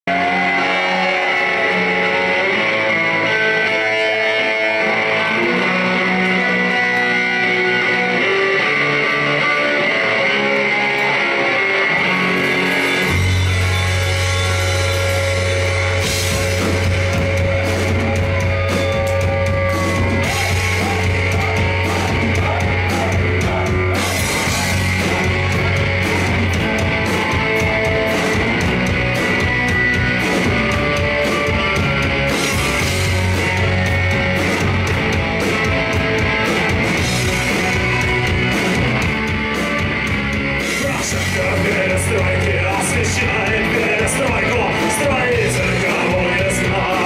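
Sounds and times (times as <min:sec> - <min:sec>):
bass line: 0:00.0 - 0:47.0
electric guitars: 0:00.0 - 0:47.0
drums with cymbals: 0:12.7 - 0:42.3.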